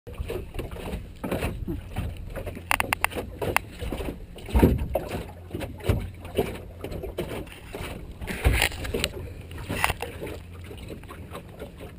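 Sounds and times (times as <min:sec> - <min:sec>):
water and hull noise: 0:00.1 - 0:11.9
sharp clicks: 0:02.7 - 0:03.6.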